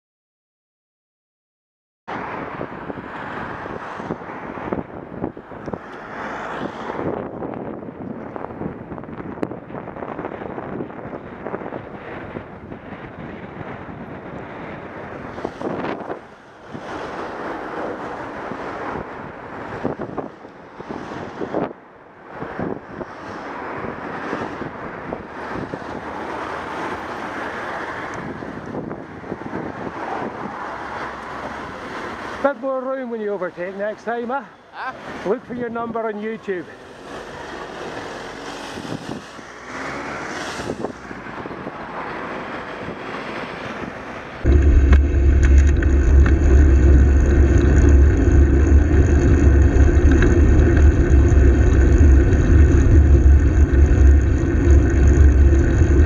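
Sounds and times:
wind rushing over microphone: 2.1s - 34.5s, 35.1s - 56.0s
road and engine noise: 2.1s - 56.0s.

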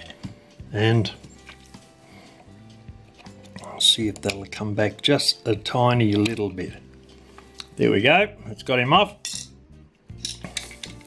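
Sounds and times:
metal chains clinking: 9.2s - 11.0s.

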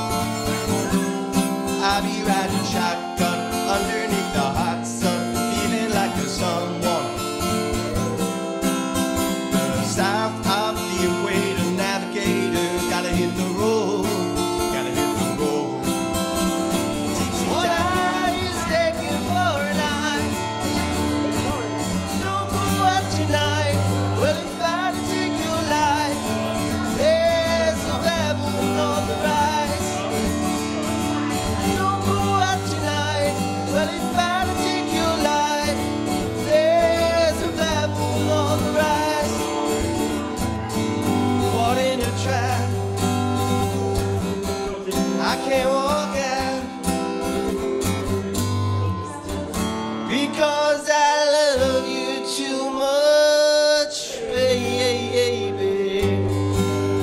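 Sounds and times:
acoustic guitar strumming: 0.0s - 57.0s
man singing: 0.0s - 57.0s.

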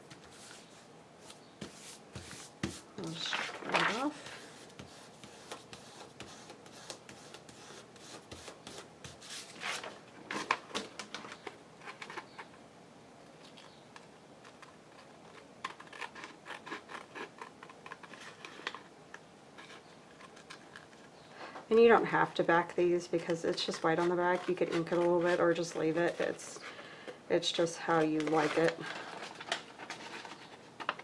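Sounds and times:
paper rustling: 0.0s - 7.4s, 8.0s - 12.3s, 27.9s - 31.0s.

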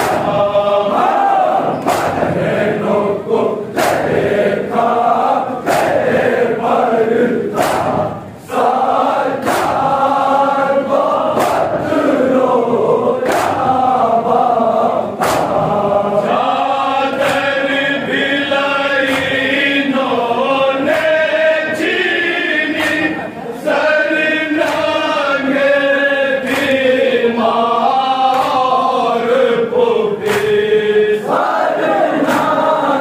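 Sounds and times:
men chanting a lament: 0.0s - 33.0s
hands slapping chest: 1.8s - 2.3s, 3.8s - 4.1s, 7.6s - 8.0s, 9.4s - 9.9s, 13.2s - 13.6s, 15.2s - 15.7s, 17.2s - 17.5s, 30.2s - 30.6s.

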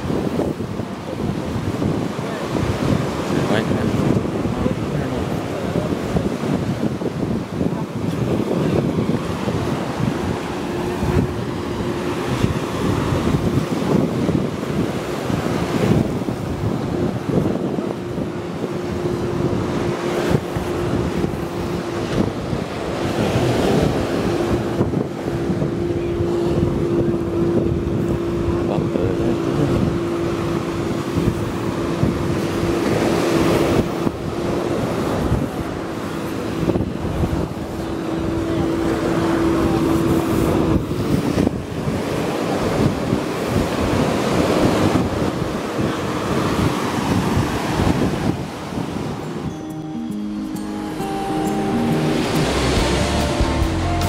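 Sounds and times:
wind buffeting microphone: 0.0s - 50.6s
surf washing onto beach: 0.0s - 54.0s
music: 49.5s - 54.0s.

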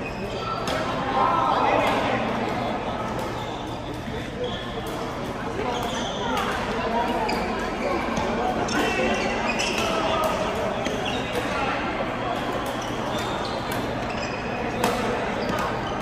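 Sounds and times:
players' voices: 0.0s - 16.0s.

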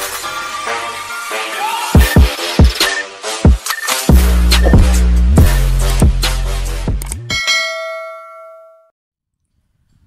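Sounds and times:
electronic music with heavy bass: 1.1s - 7.2s
bell-like ding: 7.3s - 8.9s.

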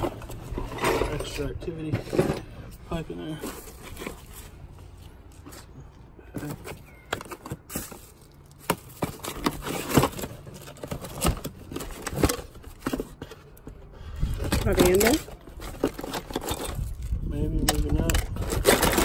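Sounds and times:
rummaging through junk: 0.0s - 19.0s.

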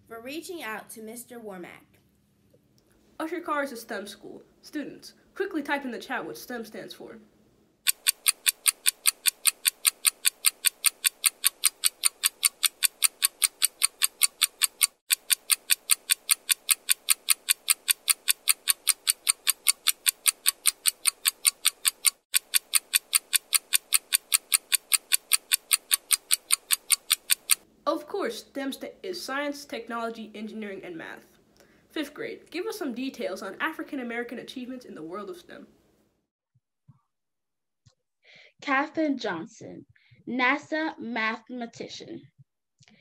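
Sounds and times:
clock ticking: 7.9s - 27.6s.

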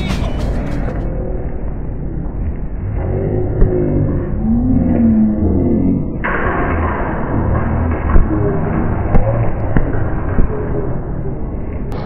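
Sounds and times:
steady low rumbling noise: 0.0s - 12.0s.

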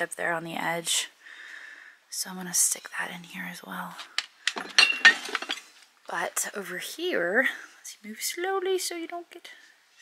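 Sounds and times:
china plates clinking: 4.5s - 5.7s.

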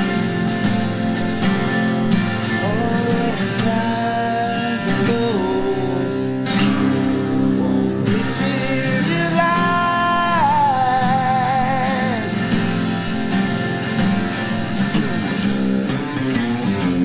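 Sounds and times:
acoustic guitar: 0.0s - 17.0s
electric guitar: 0.0s - 17.0s
man singing: 2.5s - 12.8s, 14.8s - 15.6s.

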